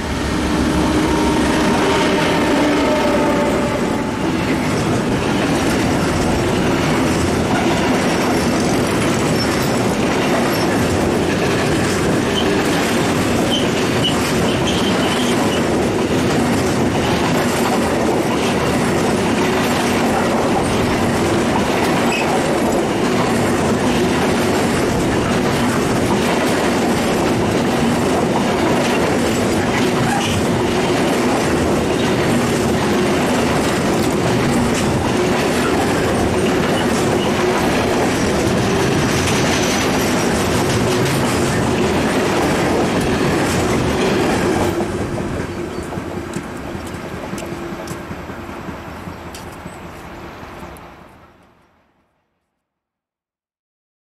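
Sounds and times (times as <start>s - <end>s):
freight train wheels rumbling: 0.0s - 51.7s.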